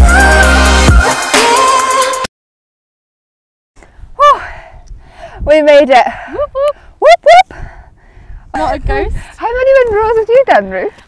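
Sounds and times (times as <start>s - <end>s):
faint wind: 3.8s - 11.0s
woman excited whoop: 6.4s - 7.5s.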